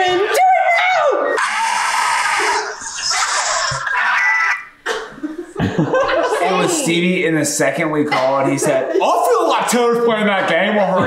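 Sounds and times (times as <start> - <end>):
high-pitched yell: 0.0 - 4.7
people screaming: 0.0 - 4.7.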